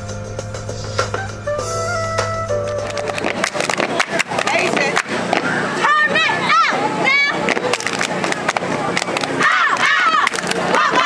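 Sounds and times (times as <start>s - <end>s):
claps and stomps on hard court: 2.8s - 5.5s, 7.5s - 11.0s
crowd: 3.0s - 11.0s.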